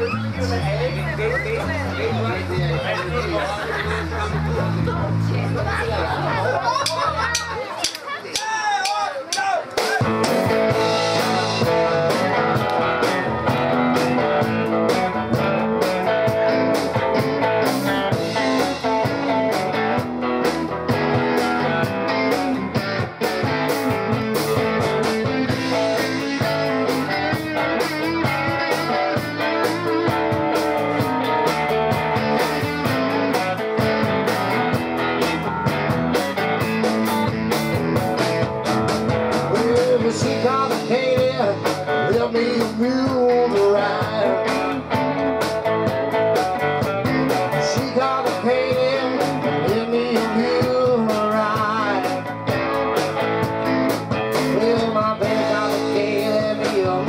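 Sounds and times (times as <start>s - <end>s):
electric bass: 0.0s - 8.0s, 10.0s - 57.0s
drum kit: 6.0s - 57.0s
electric guitars: 9.8s - 57.0s.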